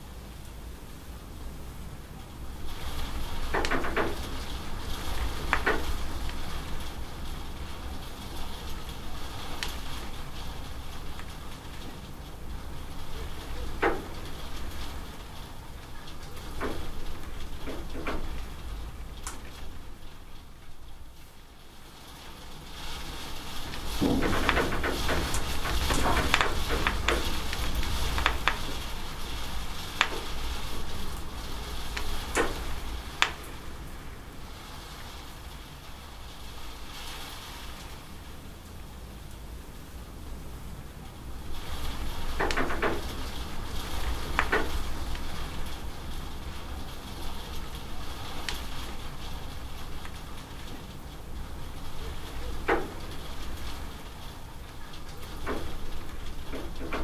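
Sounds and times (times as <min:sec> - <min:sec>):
drips and splashes off roof: 0:00.0 - 0:57.0
steady rain falling: 0:00.0 - 0:57.0.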